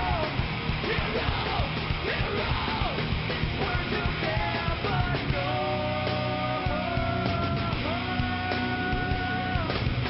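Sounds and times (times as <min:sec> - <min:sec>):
singing vocals: 0:00.0 - 0:09.9
distorted electric guitars: 0:00.0 - 0:10.0
rapid drumming: 0:00.0 - 0:10.0.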